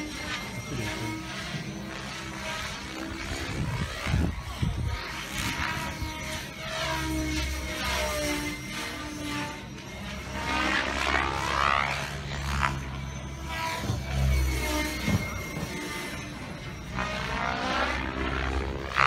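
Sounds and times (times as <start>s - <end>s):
model helicopter rotor whine: 0.0s - 19.0s.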